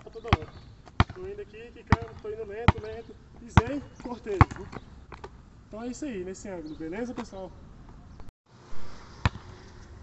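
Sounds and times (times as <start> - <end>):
basketball bouncing on asphalt: 0.0 - 5.4, 9.2 - 9.6.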